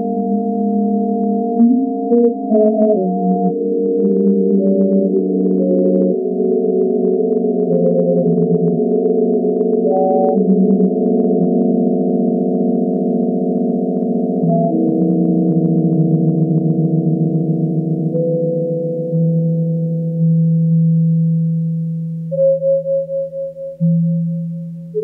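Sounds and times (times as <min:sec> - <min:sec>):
sustained synthesizer tones: 0:00.0 - 0:25.0.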